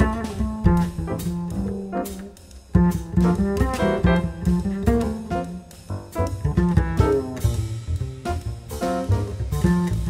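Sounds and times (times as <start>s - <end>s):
double bass: 0.0s - 10.0s
jazz piano trio playing waltz: 0.0s - 10.0s.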